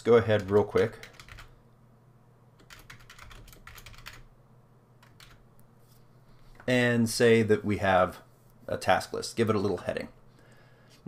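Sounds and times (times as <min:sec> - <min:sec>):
typing on computer keyboard: 0:00.4 - 0:01.5, 0:02.6 - 0:04.3, 0:05.0 - 0:05.4.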